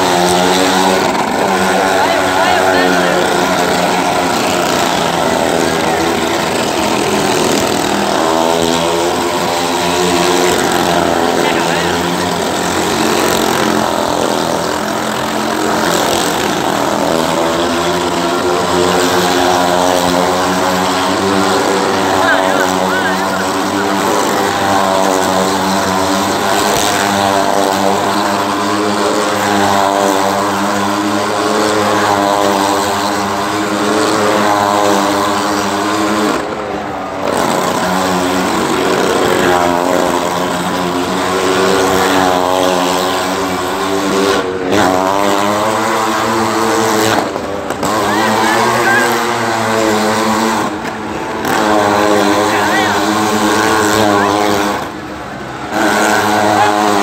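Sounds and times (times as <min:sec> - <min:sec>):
vehicle engine at high revs: 0:00.0 - 0:57.0.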